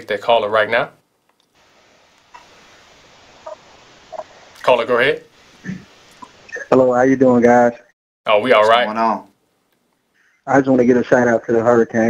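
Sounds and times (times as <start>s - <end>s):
faint telephone line hiss: 0.0s - 7.7s, 8.3s - 11.9s.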